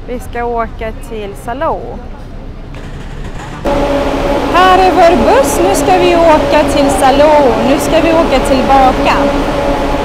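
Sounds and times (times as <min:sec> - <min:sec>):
low rumbling street noise: 0:00.0 - 0:10.0
bus engine idling: 0:02.4 - 0:10.0.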